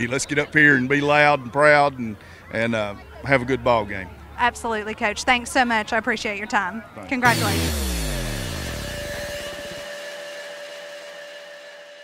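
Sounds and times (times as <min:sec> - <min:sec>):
deep electronic sweep falling: 0:07.3 - 0:10.1.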